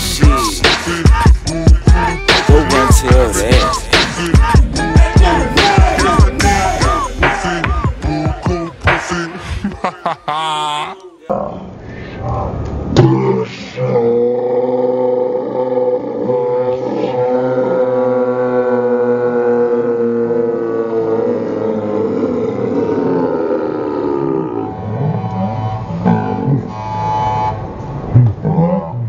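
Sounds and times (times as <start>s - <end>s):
men yelling long note: 2.0s - 8.7s.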